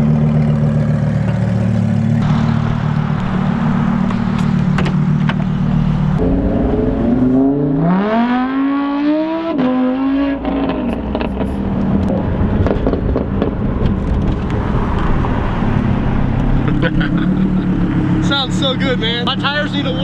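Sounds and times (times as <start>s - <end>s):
car engine idling: 0.0s - 7.6s
car accelerating with upshift: 0.0s - 20.0s.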